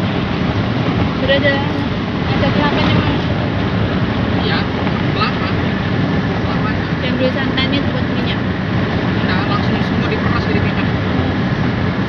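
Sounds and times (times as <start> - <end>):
car road and wind noise: 0.0 - 12.0.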